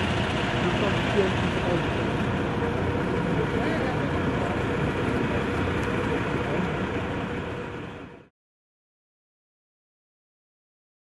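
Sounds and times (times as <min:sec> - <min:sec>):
fire engine idling: 0:00.0 - 0:08.3.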